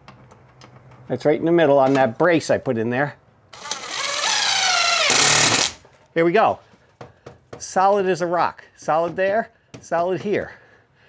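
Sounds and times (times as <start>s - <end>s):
power driver driving screw: 3.5s - 5.8s.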